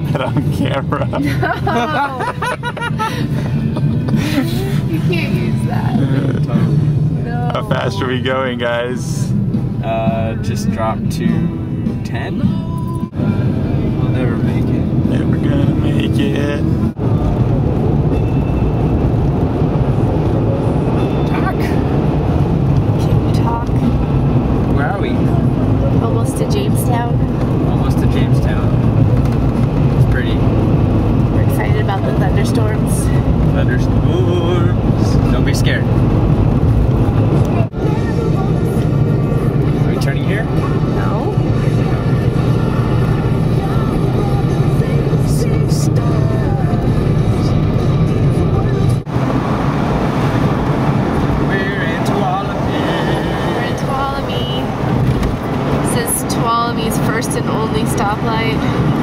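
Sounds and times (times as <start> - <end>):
indistinct voices: 0.0 - 17.9, 36.9 - 49.2, 51.1 - 59.0
road and engine rumble in car: 0.0 - 59.0
music: 7.8 - 14.6, 40.4 - 49.0.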